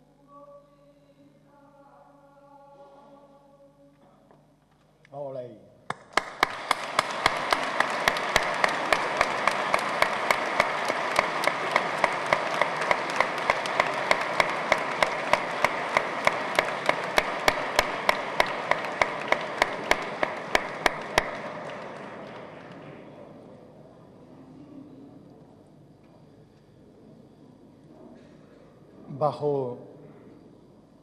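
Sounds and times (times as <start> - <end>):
sharp single clapping: 5.9 - 21.9
audience applause: 5.9 - 23.4.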